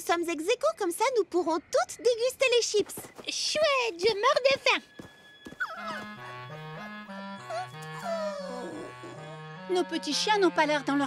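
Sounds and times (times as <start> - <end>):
light background music: 0.0 - 11.0
cartoon puppies whimpering: 5.6 - 9.5.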